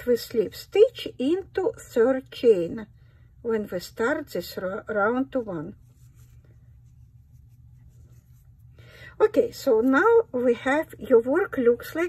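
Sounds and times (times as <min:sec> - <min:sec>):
yarn rustling against crochet hook: 0:04.6 - 0:08.7.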